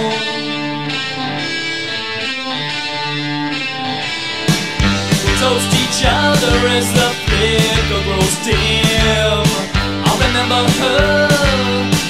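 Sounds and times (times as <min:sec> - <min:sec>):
ringing electric guitar notes: 0:00.0 - 0:12.0
drum hit: 0:04.8 - 0:12.0.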